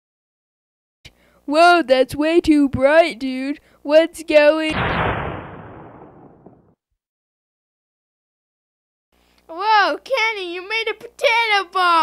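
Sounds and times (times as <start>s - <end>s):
cartoon explosion blast: 4.7s - 6.7s.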